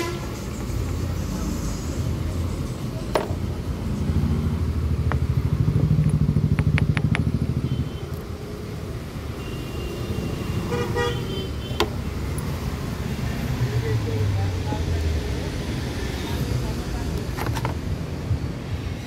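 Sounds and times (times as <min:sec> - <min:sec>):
vehicle engine running: 0:00.5 - 0:08.2.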